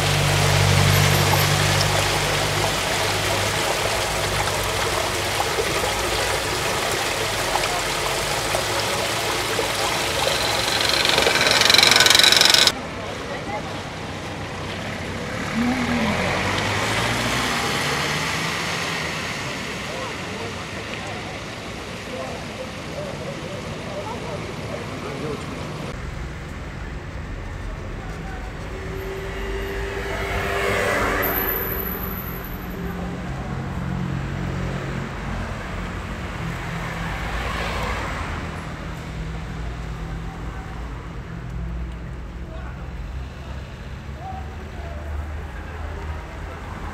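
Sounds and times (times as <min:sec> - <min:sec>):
rainwater rushing through drain grate: 0:00.0 - 0:12.8
road traffic: 0:00.0 - 0:46.9
shallow water running over street: 0:00.0 - 0:46.9.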